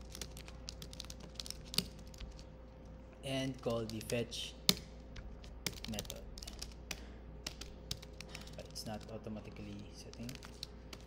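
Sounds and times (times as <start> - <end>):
computer keyboard typing: 0.0 - 2.4, 3.5 - 11.0.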